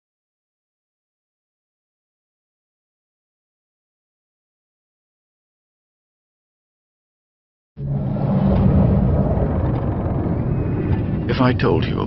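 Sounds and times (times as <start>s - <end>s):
low underwater rumble: 7.8s - 11.4s
deep hum: 7.8s - 11.9s.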